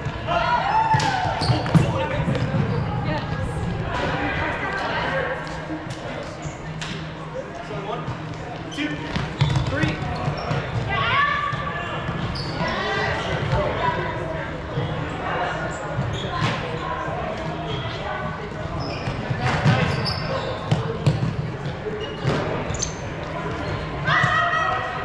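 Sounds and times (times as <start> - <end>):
shoe squeaks on hardwood: 8.7 - 10.8, 12.3 - 13.4, 18.8 - 20.8, 22.0 - 23.2.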